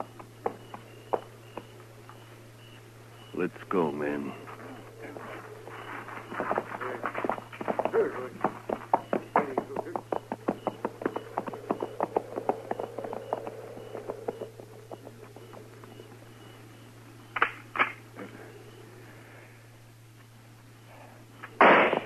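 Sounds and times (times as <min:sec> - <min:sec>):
galloping hoofbeats: 0:00.0 - 0:02.8, 0:04.2 - 0:16.9
sharp cracks: 0:17.3 - 0:18.1, 0:21.4 - 0:22.0.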